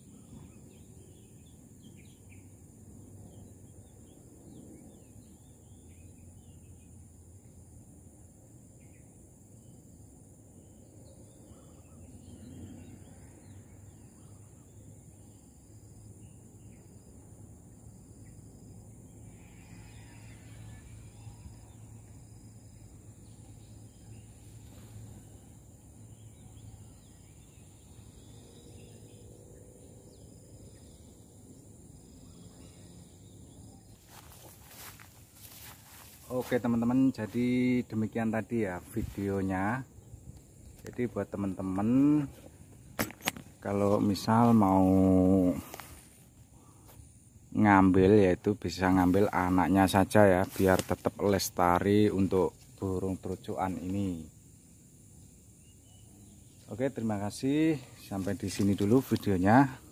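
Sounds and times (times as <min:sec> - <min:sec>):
faint bird chirps: 0:08.8 - 0:17.1.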